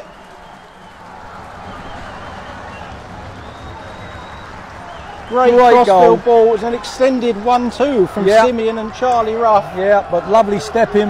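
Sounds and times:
crowd cheering: 0.0 - 11.0
crowd clapping: 0.0 - 11.0.

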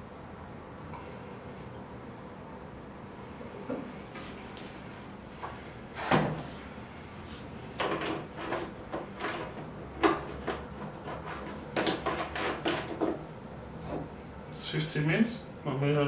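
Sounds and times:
plastic cans knocking on wooden desk: 11.7 - 13.2.

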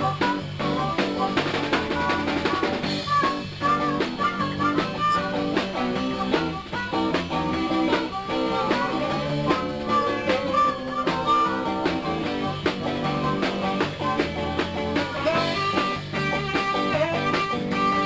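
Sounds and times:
amplified harmonica with bent notes: 0.0 - 18.0
electric guitar: 0.0 - 18.0
steady drum beat: 0.0 - 18.0.

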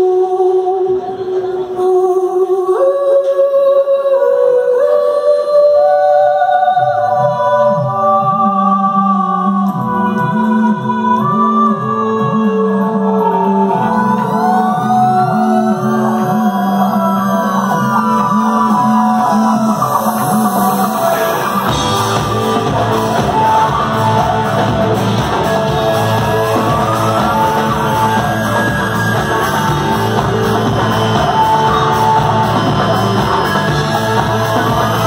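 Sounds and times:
electric guitar riff: 13.1 - 35.0
rock band sustained chords: 13.4 - 35.0
bass and drums: 16.6 - 35.0.

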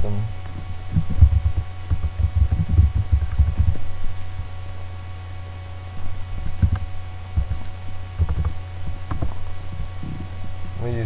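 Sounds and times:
steady low hum: 0.0 - 11.0
keyboard typing: 0.9 - 3.8, 8.2 - 9.3.

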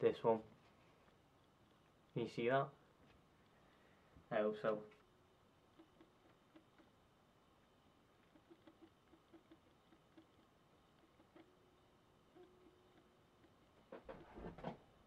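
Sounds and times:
mouse scroll wheel ticks: 5.7 - 7.0, 8.2 - 14.3.

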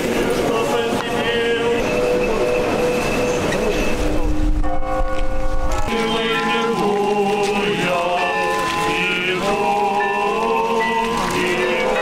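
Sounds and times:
church choir chanting: 0.0 - 4.3, 5.6 - 12.0
low rumble: 2.0 - 5.9.

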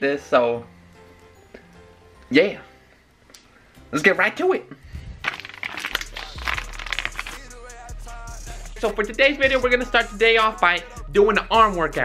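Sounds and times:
plastic bag crinkling: 5.0 - 7.5.

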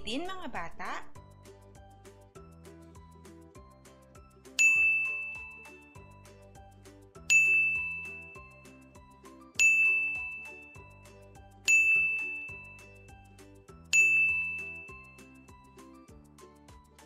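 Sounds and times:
soft background music: 0.0 - 17.0
bright chime dings: 4.6 - 6.2, 7.2 - 8.8, 9.6 - 13.2, 13.9 - 15.6.

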